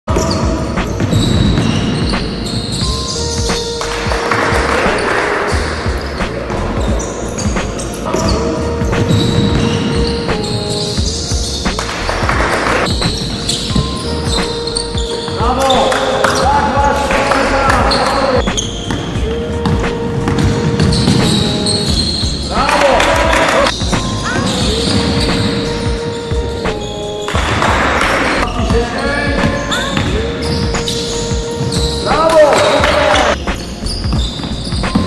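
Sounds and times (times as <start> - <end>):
basketball bouncing on court: 0.1 - 26.6, 27.3 - 35.0
background music with held notes: 0.1 - 35.0
players calling out: 4.2 - 33.5.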